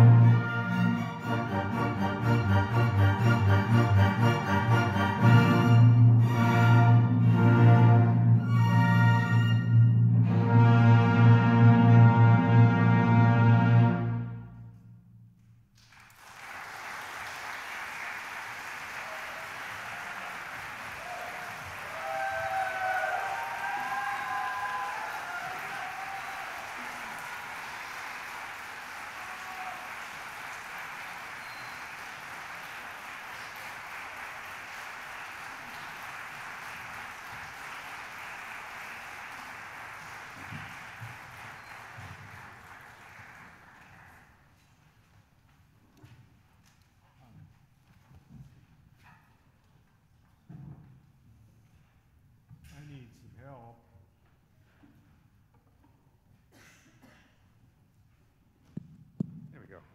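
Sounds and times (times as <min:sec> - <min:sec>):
audience applauding: 0:15.8 - 0:44.6
high cheering whoops: 0:19.0 - 0:27.8, 0:29.1 - 0:30.2.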